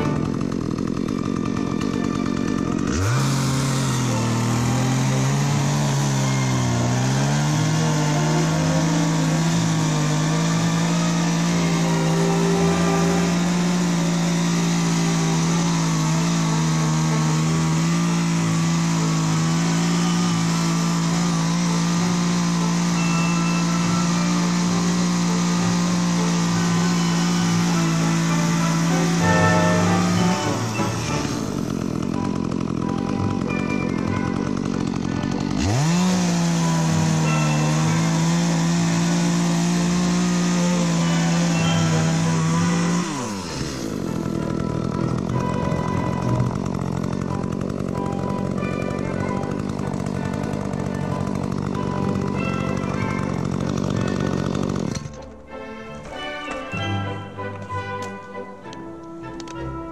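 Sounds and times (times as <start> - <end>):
background music: 0.0 - 59.9
chainsaw revving: 0.0 - 59.9.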